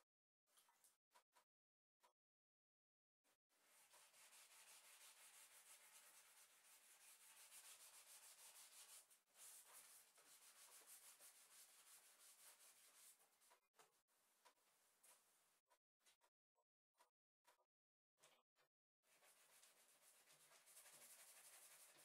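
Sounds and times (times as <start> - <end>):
sandpaper scratching painted wood: 3.8 - 13.1, 19.1 - 22.0.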